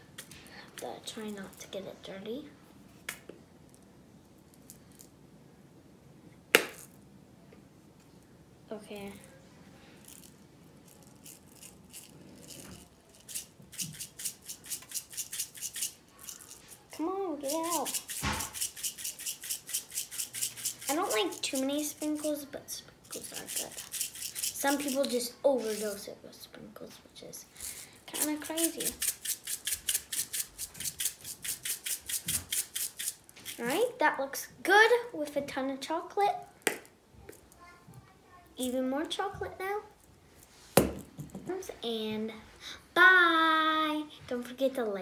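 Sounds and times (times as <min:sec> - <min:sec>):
sprinkles rattling in plastic shaker: 0:10.0 - 0:22.4, 0:23.0 - 0:26.0, 0:27.6 - 0:33.7.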